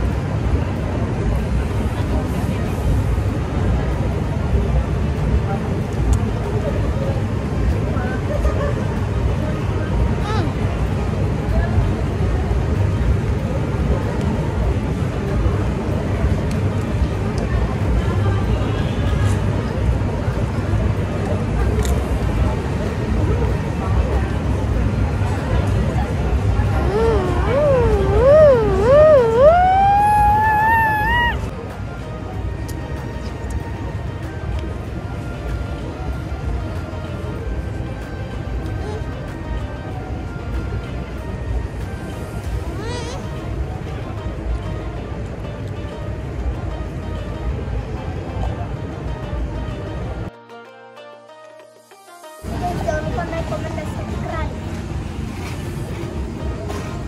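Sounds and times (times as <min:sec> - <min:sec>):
low rumble of outdoor noise: 0:00.0 - 0:50.4, 0:52.4 - 0:57.0
indistinct voices: 0:25.8 - 0:31.6
siren-like wailing tone: 0:26.8 - 0:31.5.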